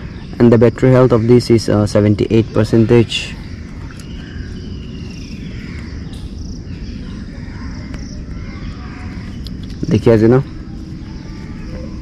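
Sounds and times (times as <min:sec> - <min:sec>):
crickets chirping: 0:00.0 - 0:12.0
steady low rumble: 0:00.0 - 0:12.0.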